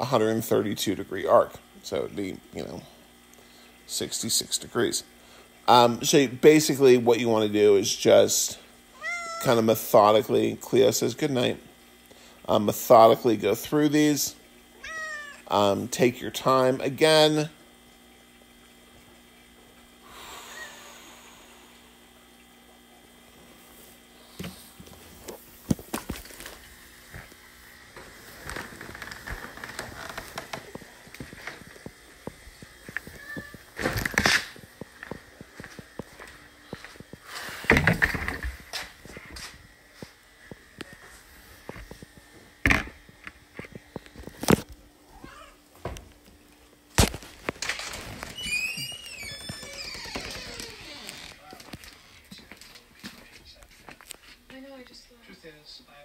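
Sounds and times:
low electrical hum: 0:00.0 - 0:56.0.

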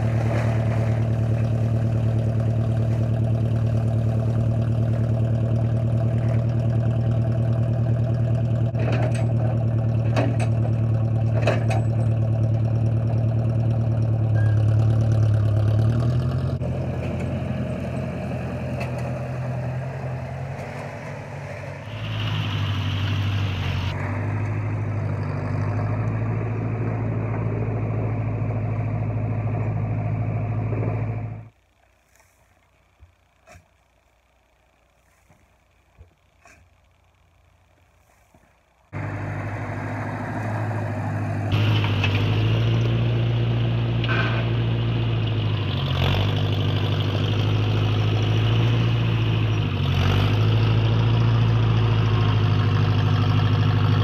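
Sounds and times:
loader dumping soil: 0:00.0 - 0:31.4, 0:38.0 - 0:54.0
tractor engine running: 0:00.0 - 0:54.0.

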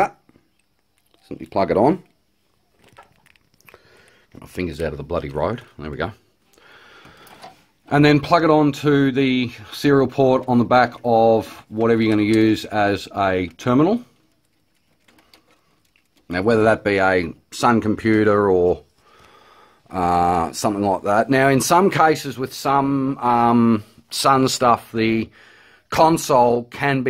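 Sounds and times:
faint plastic clicks: 0:13.4 - 0:16.4.

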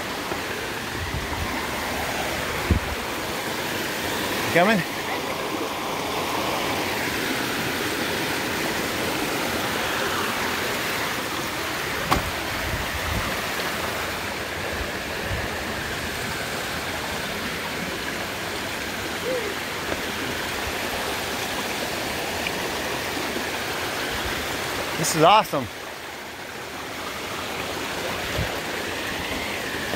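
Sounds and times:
creek water running over rocks: 0:00.0 - 0:29.9
sharp knock: 0:12.0 - 0:12.3.

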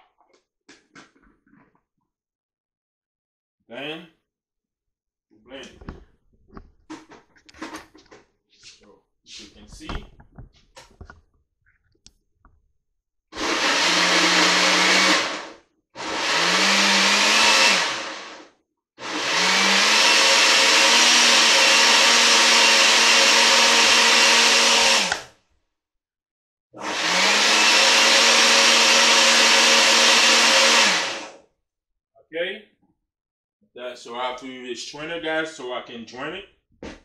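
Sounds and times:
blender motor running: 0:13.4 - 0:25.3, 0:26.8 - 0:31.4.

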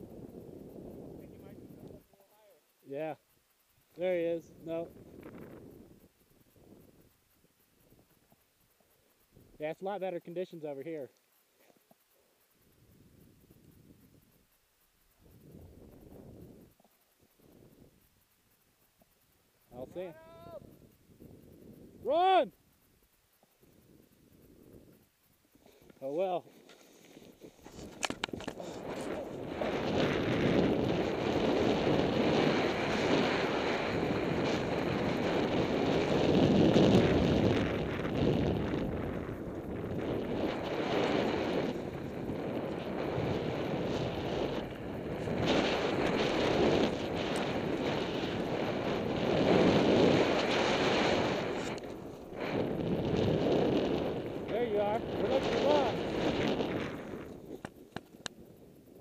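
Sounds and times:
wind rushing over microphone: 0:04.0 - 0:07.2, 0:19.7 - 0:22.4, 0:27.3 - 0:59.0
snowboard sliding through powder snow: 0:28.6 - 0:57.6.

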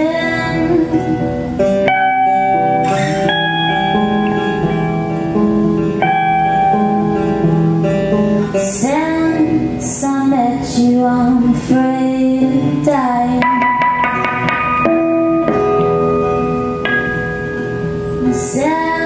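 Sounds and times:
woman singing: 0:00.0 - 0:03.3, 0:08.4 - 0:14.1, 0:18.0 - 0:19.0
acoustic guitar: 0:00.0 - 0:19.0
electric guitar: 0:00.0 - 0:19.0.

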